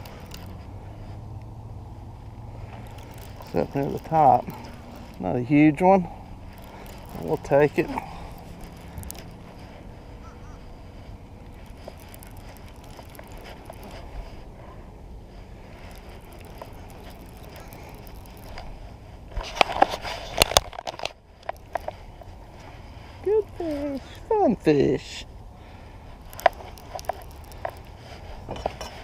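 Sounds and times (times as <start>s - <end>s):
fishing reel clicks and knocks: 0.0s - 0.7s, 2.4s - 14.5s, 15.4s - 24.2s, 26.1s - 29.0s.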